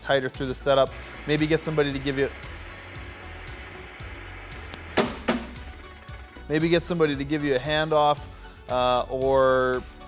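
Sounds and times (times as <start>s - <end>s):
background music: 0.0s - 10.0s
hand slapping television set: 4.8s - 5.6s.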